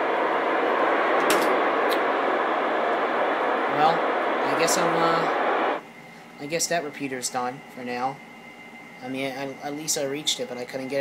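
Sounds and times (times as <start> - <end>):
radio static hiss: 0.0 - 5.8.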